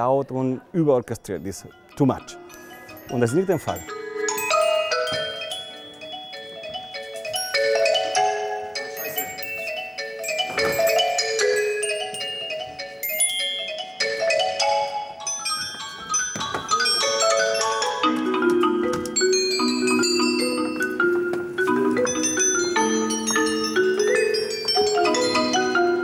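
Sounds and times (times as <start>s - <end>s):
bell-like mallet notes: 0.7s - 26.0s
marimba and xylophone melody: 0.7s - 26.0s.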